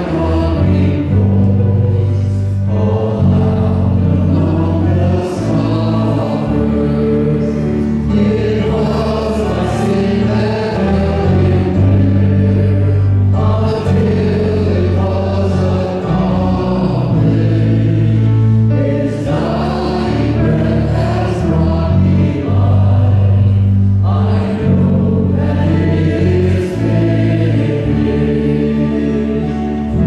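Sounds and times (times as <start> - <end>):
electronic keyboard accompaniment: 0.0 - 30.0
group singing a slow hymn: 0.0 - 30.0.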